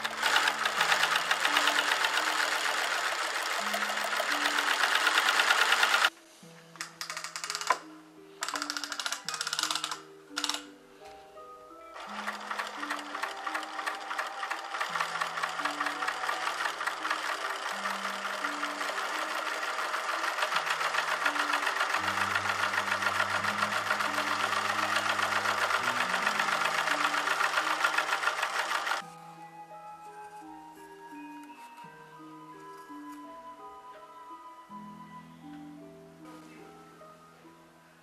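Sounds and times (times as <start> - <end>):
sewing machine stitching: 0.0 - 6.1, 12.0 - 29.1
background music: 0.0 - 38.0.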